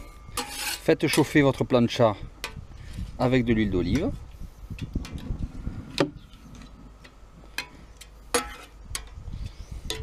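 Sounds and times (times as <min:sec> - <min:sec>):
metal spatula scraping cooking plate: 0:00.3 - 0:01.4, 0:08.3 - 0:08.8.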